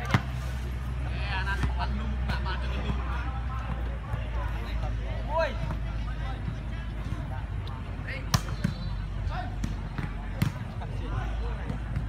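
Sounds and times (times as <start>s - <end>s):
scattered voices: 0.0s - 12.0s
volleyball being struck: 8.2s - 9.0s.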